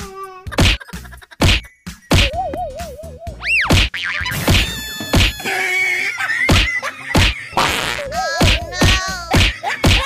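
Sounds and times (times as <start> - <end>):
loud cartoon whacks: 0.6 - 0.8, 1.4 - 2.4, 3.6 - 5.4, 6.5 - 10.0.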